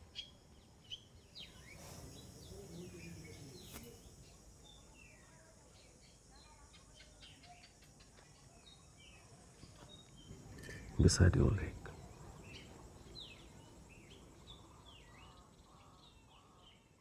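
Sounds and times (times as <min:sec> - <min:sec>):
faint birds chirping: 0:00.0 - 0:17.0.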